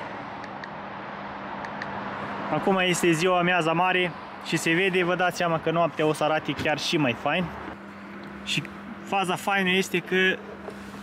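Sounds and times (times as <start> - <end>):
background traffic noise: 0.0 - 11.0.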